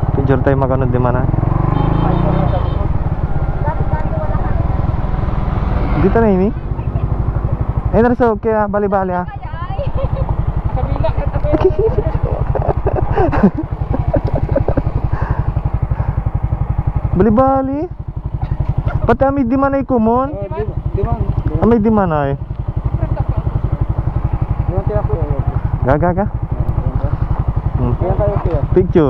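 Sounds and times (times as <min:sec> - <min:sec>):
motorcycle engine idling: 0:00.0 - 0:29.0.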